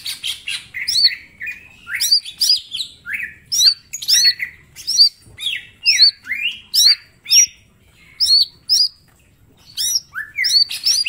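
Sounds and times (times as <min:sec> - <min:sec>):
bird singing: 0:00.0 - 0:11.0.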